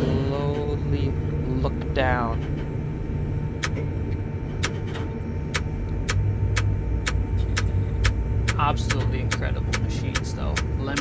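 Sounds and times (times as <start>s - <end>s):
crane machinery humming: 0.0s - 11.0s
sharp short ticks: 5.5s - 11.0s.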